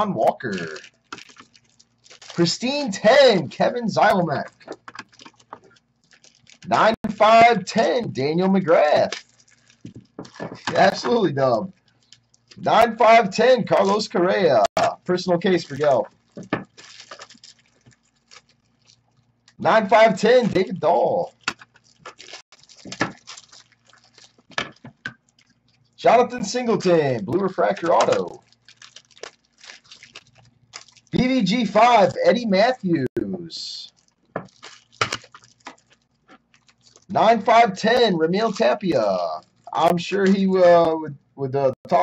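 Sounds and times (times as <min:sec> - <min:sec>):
plastic wrapping rustling: 0:00.2 - 0:03.5, 0:04.1 - 0:12.7, 0:14.7 - 0:32.4, 0:33.9 - 0:37.6, 0:39.4 - 0:40.4.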